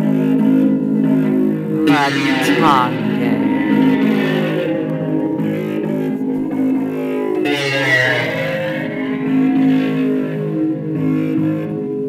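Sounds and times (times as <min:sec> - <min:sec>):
guitar plucked strings: 0:01.8 - 0:05.4.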